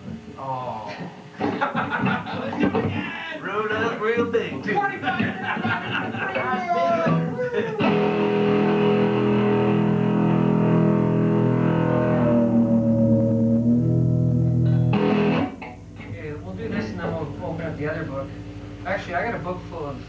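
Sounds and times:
electric guitar chord ringing: 0:07.8 - 0:20.0.

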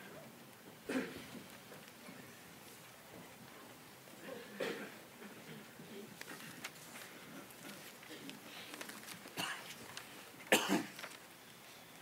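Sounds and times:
person coughing: 0:00.9 - 0:01.2, 0:04.2 - 0:05.0, 0:09.4 - 0:09.7, 0:10.5 - 0:10.9.

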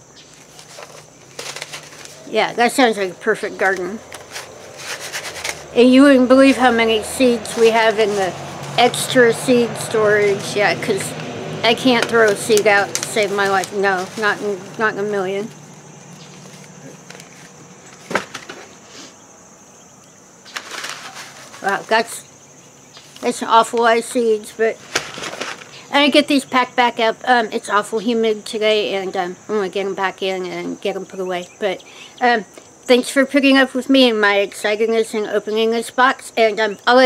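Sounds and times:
insects chirping: 0:00.0 - 0:37.0
paper rustling and crinkling: 0:00.3 - 0:02.3, 0:03.5 - 0:05.8, 0:07.3 - 0:09.0, 0:11.7 - 0:18.7, 0:20.4 - 0:22.2, 0:24.8 - 0:25.9.

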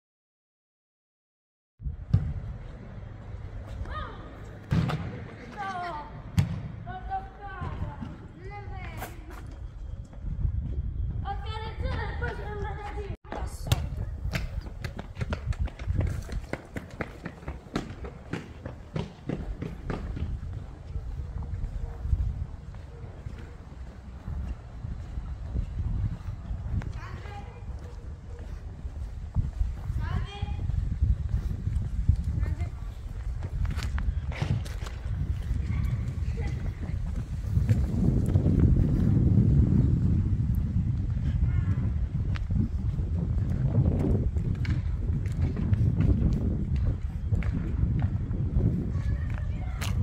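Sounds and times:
low wind rumble on microphone: 0:01.8 - 0:04.3, 0:06.0 - 0:50.0
footsteps on paved ground: 0:02.2 - 0:50.0.

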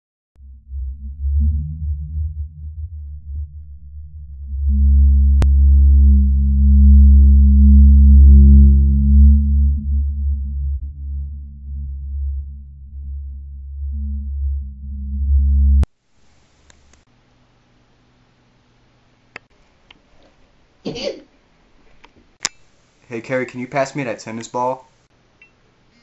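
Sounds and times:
low synthesized drone: 0:00.4 - 0:15.9.

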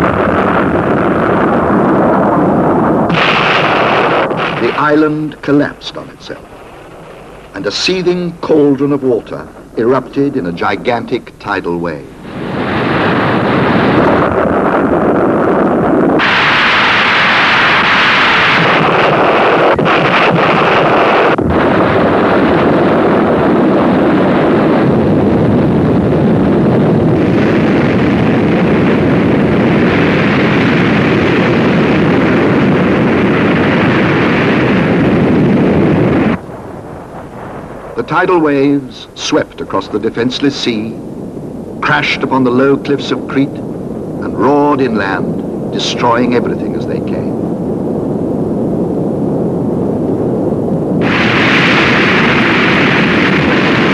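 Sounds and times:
loud continuous rumbling: 0:00.0 - 0:53.9.

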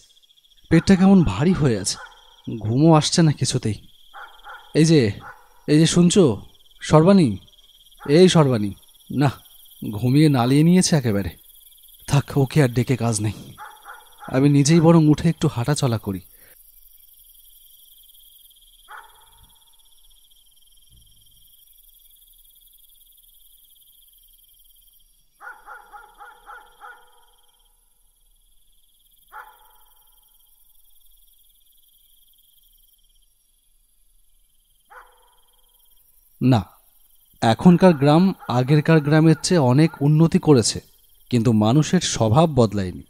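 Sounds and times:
crickets chirring: 0:00.0 - 0:43.0
dog barking faintly: 0:00.7 - 0:02.3, 0:04.2 - 0:05.5, 0:13.6 - 0:15.0, 0:18.9 - 0:19.5, 0:25.4 - 0:27.3, 0:29.3 - 0:29.9, 0:34.9 - 0:35.4, 0:37.8 - 0:40.1.

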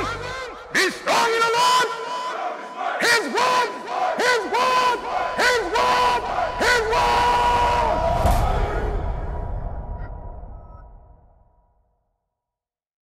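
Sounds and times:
group shouting a chant: 0:00.0 - 0:09.1.

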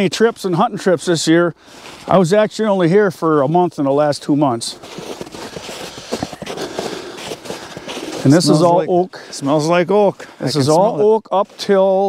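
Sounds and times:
footsteps crunching through snow: 0:01.6 - 0:02.9, 0:04.3 - 0:12.0.

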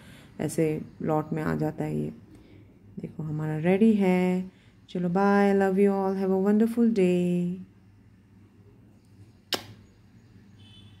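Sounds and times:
faint low background noise: 0:00.0 - 0:11.0
sharp click: 0:09.5 - 0:09.8.

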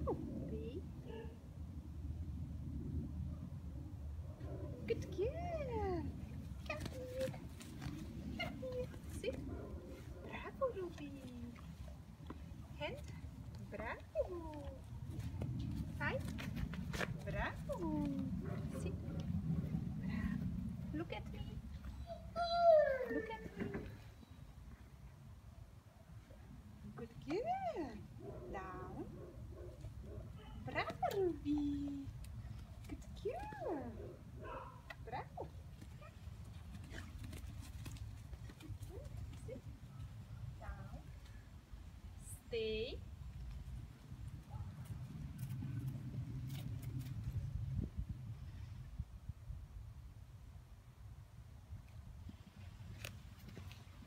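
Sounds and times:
low steady rumble: 0:00.0 - 0:24.2
footsteps and paws on grass: 0:06.1 - 0:22.0, 0:34.5 - 0:40.2, 0:52.2 - 0:54.0
puppy whining: 0:21.9 - 0:24.0.

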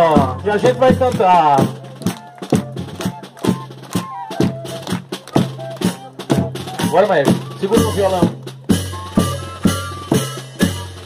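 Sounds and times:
drum strokes: 0:00.0 - 0:11.0
fifes playing melody: 0:00.0 - 0:11.0.

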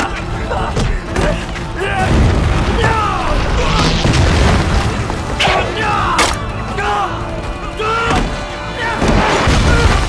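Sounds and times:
people shouting and crying out: 0:00.0 - 0:04.2, 0:05.3 - 0:10.0.

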